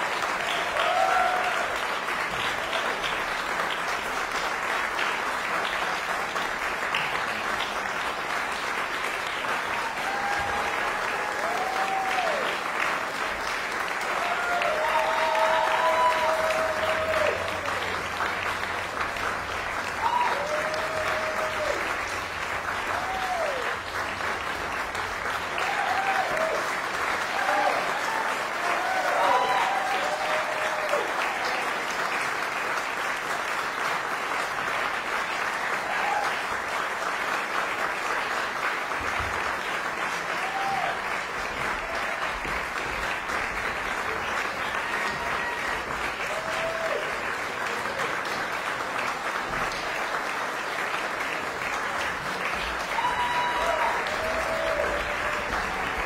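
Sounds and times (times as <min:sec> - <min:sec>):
audience applauding: 0:00.0 - 0:56.0.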